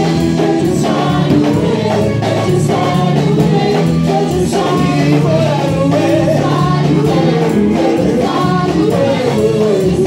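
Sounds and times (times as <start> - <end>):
keyboard accompaniment: 0.0 - 10.0
women's vocal group singing gospel: 0.0 - 10.0.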